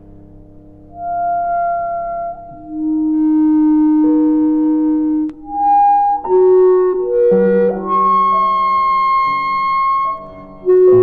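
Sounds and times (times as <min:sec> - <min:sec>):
soft held piano notes: 0:00.0 - 0:11.0
clarinet holding a long note: 0:00.9 - 0:11.0.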